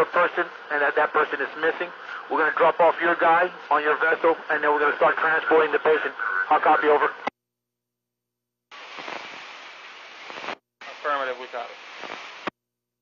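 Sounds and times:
radio static hiss: 0:00.0 - 0:07.3, 0:08.7 - 0:12.5
unintelligible radio voice: 0:00.0 - 0:07.3.

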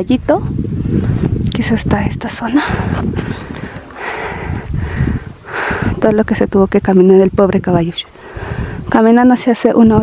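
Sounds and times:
wind buffeting microphone: 0:00.0 - 0:10.0
person breathing close: 0:02.6 - 0:06.0, 0:08.1 - 0:08.9.

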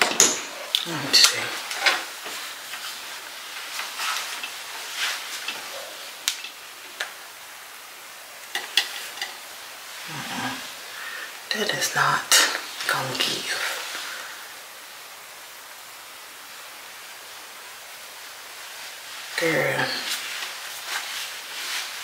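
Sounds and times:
hands rustling through hair: 0:00.8 - 0:07.3, 0:18.7 - 0:22.0.

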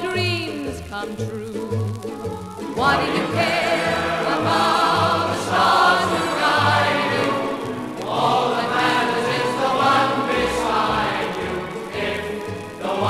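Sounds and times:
pop ballad on a record: 0:00.0 - 0:13.0
choir-like voices singing: 0:01.5 - 0:13.0.

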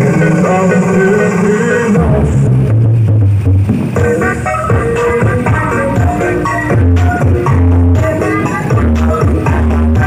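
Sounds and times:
loud music with deep bass: 0:00.0 - 0:10.0.

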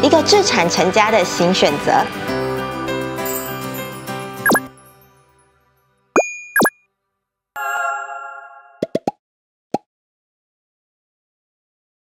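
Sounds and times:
cartoon rising pops: 0:06.2 - 0:06.7.

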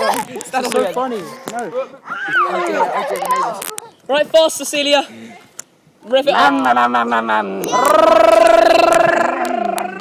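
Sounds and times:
man's drawn-out vocal cry: 0:07.2 - 0:10.0.

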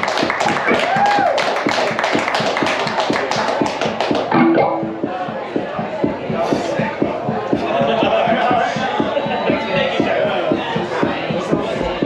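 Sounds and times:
fast percussive strokes: 0:00.7 - 0:05.7
plucked string notes: 0:04.3 - 0:05.4.

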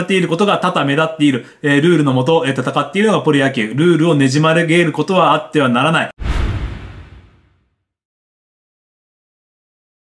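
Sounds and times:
whoosh hit with deep boom: 0:06.2 - 0:07.7.

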